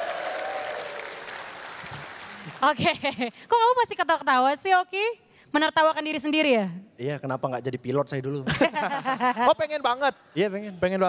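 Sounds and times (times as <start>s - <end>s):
audience applauding: 0.0s - 3.3s.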